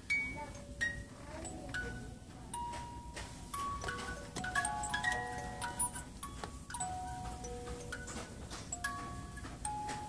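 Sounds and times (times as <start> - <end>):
music box chiming notes: 0.1 - 10.0.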